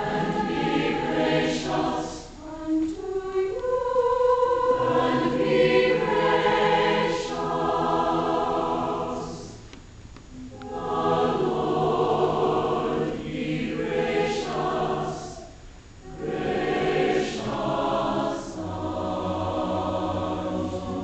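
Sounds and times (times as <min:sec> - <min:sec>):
mixed choir singing: 0:00.0 - 0:09.6, 0:10.4 - 0:21.0.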